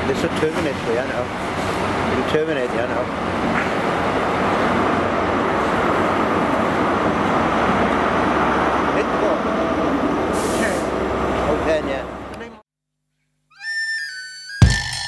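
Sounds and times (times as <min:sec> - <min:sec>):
passenger train passing: 0:00.0 - 0:12.3
short hiss: 0:10.4 - 0:10.9.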